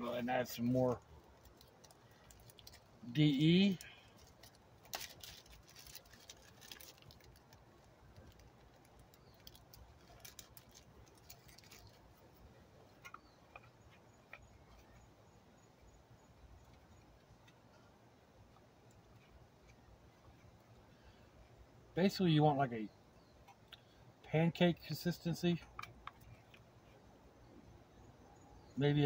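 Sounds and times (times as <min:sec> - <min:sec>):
faint handling clicks and rustles: 0:00.1 - 0:21.8, 0:24.8 - 0:27.7.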